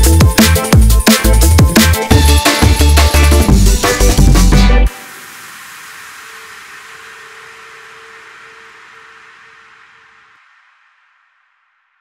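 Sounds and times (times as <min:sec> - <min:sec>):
hissing white noise: 0:04.9 - 0:12.0.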